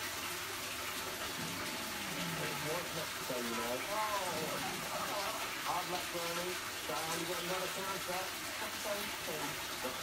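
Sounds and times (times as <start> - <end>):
water streams splashing: 0.0 - 10.0.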